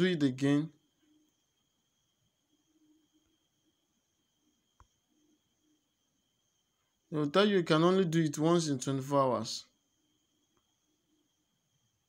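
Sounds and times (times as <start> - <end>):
faint click: 4.7 - 5.0.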